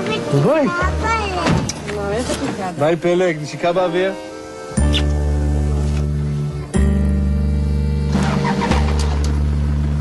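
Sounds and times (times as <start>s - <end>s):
background music: 0.0s - 10.0s
car engine idling: 5.4s - 10.0s.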